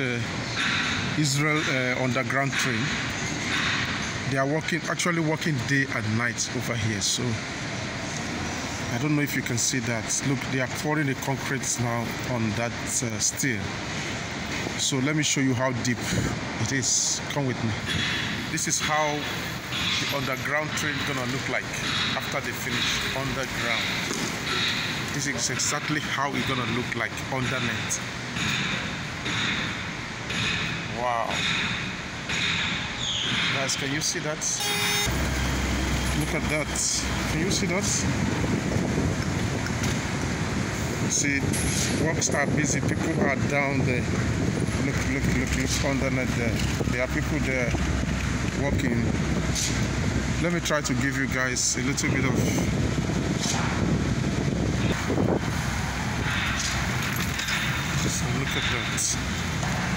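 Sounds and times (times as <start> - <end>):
machinery high whine: 0.0 - 59.9
low outdoor rumble: 35.1 - 59.9
wind buffeting microphone: 35.1 - 59.9.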